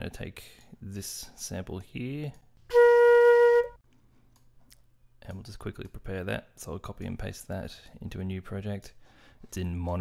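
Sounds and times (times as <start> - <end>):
held flute note: 2.7 - 3.8.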